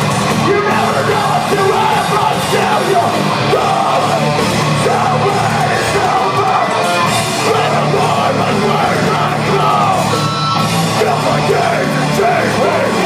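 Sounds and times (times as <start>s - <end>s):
loud metal band playing: 0.0s - 13.0s
vocalist yelling and singing: 0.4s - 13.0s.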